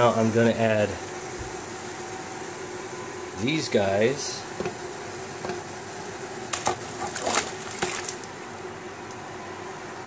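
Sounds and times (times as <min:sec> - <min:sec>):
induction cooktop hum: 0:00.0 - 0:10.0
tomato pieces plopping into liquid: 0:06.5 - 0:08.4.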